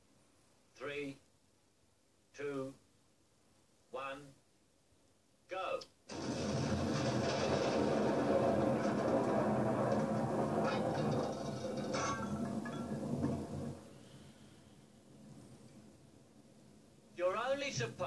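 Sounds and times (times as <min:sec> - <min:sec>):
explosion blast and rumble: 0:06.1 - 0:14.4
debris clattering: 0:06.1 - 0:16.2
faint hiss: 0:11.9 - 0:18.0.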